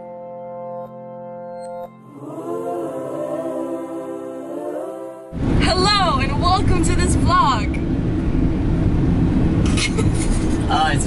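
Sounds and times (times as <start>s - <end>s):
road and engine rumble: 5.4s - 11.0s.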